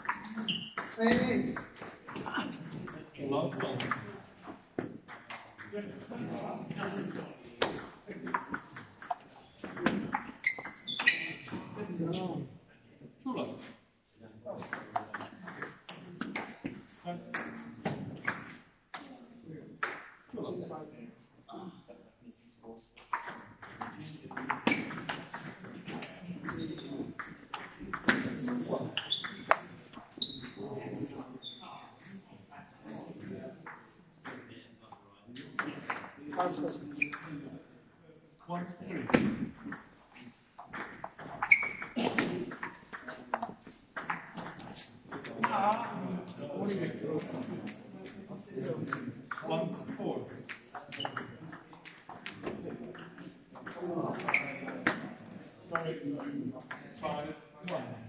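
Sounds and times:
people talking: 0:00.0 - 0:04.5, 0:05.6 - 0:10.3, 0:10.9 - 0:13.6, 0:14.2 - 0:18.4, 0:19.0 - 0:37.7, 0:38.4 - 0:43.6, 0:44.3 - 0:58.0.

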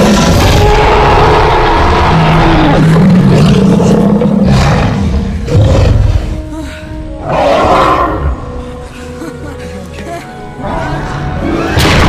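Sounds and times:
dinosaur roaring: 0:00.0 - 0:06.4, 0:07.2 - 0:08.4
orchestral music: 0:04.9 - 0:12.0.

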